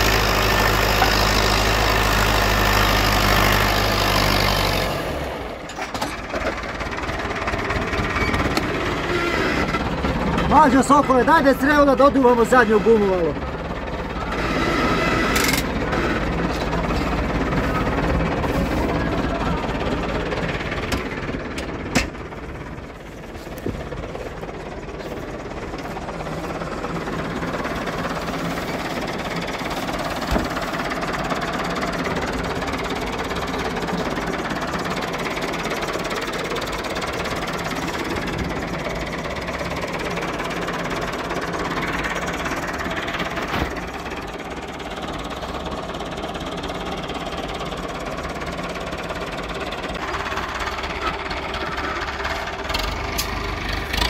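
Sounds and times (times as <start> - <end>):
tractor diesel engine running: 0.0 - 54.0.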